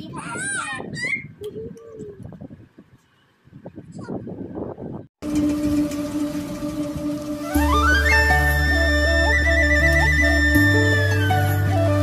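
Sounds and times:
instrumental background music: 5.2 - 12.0.

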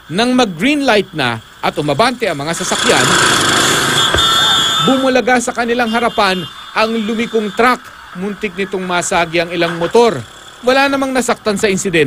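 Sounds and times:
road traffic noise: 0.0 - 12.0
motorcycle engine: 2.6 - 5.1, 9.4 - 11.3.

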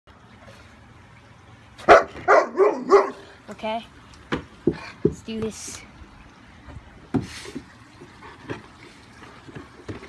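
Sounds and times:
dog barking: 1.9 - 3.2.

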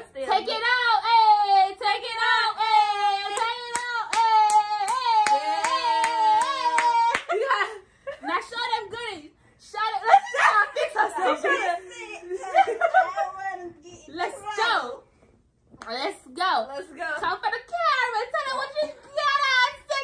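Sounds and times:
people talking: 0.0 - 15.1, 15.8 - 20.0
hands clapping a steady beat: 3.3 - 7.4
people laughing: 10.1 - 13.7.

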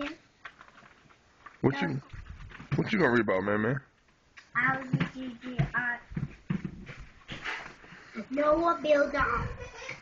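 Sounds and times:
book pages rustling: 0.0 - 2.9, 6.2 - 8.2
child murmuring: 8.2 - 10.0.

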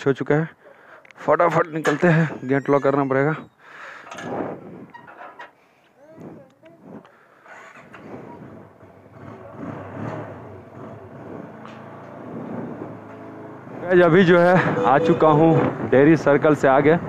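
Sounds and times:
motorcycle engine humming: 7.1 - 16.8.

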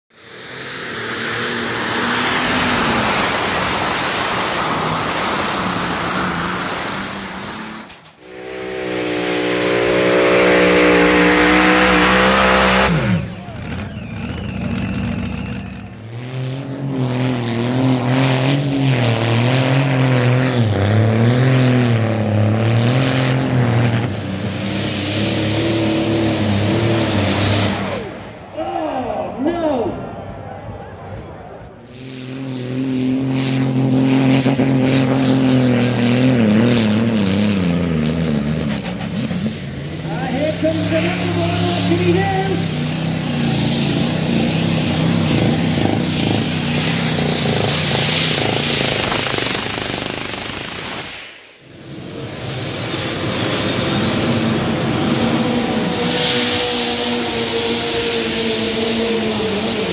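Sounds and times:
heavy engine drone under load: 0.1 - 29.4, 30.0 - 59.9.

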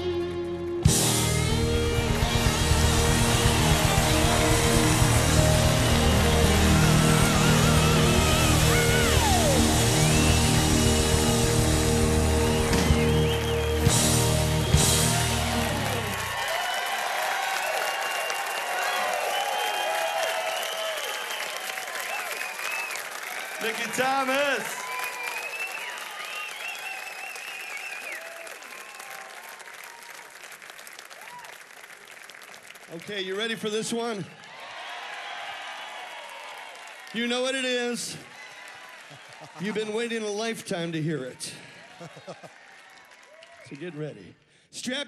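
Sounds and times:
live rock band playing: 0.0 - 16.4
crowd cheering and applauding: 0.0 - 44.4.

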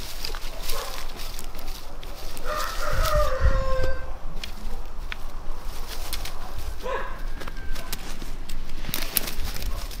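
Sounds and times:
dry twigs crackling: 0.0 - 10.0
rooster crowing: 2.4 - 4.2, 6.8 - 8.2.

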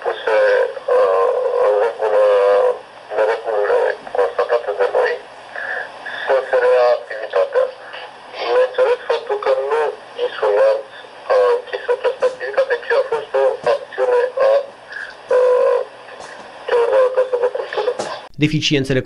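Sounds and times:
man speaking over telephone: 0.0 - 19.0.

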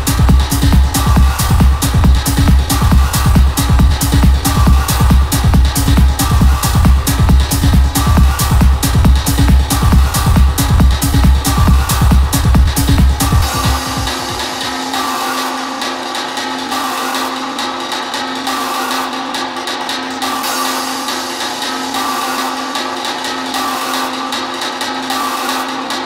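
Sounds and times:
pulsing noisy synth: 0.0 - 18.6
techno music: 0.0 - 26.0.

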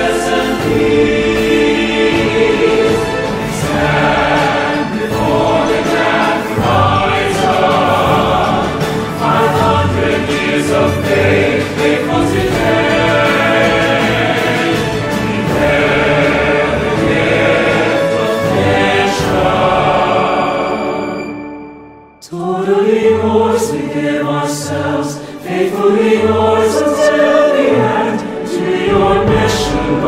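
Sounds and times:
choir singing with instruments: 0.0 - 30.0.

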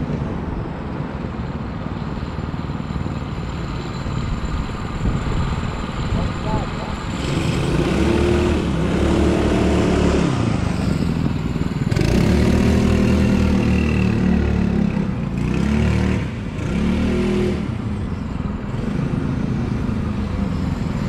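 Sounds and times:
kart engine revving: 3.1 - 21.0.

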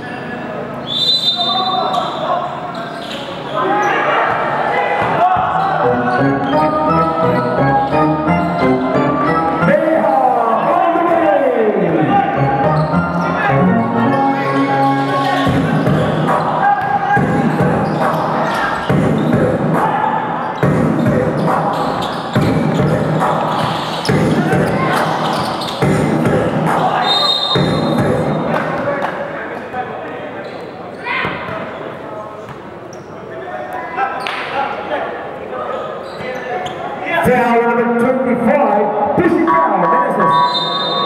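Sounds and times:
voices echoing in gym: 0.0 - 41.0
high whistle: 0.8 - 2.3, 27.0 - 27.9, 40.2 - 41.0.

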